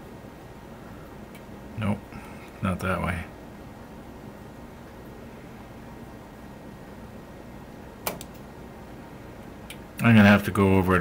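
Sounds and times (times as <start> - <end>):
steady low hum: 0.0 - 11.0
sharp click: 8.0 - 8.5.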